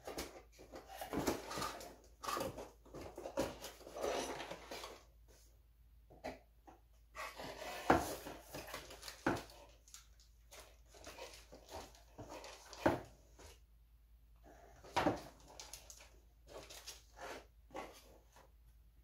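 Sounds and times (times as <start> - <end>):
rustling and crinkling packaging: 0.0 - 5.1, 7.2 - 13.6, 14.8 - 18.5.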